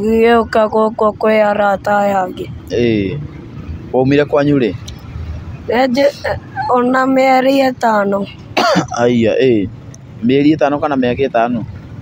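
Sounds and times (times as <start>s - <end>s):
person talking: 5.7s - 9.2s.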